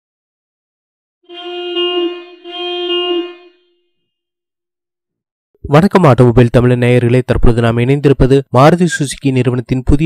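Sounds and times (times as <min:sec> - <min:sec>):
car horn honking: 0:01.3 - 0:04.1.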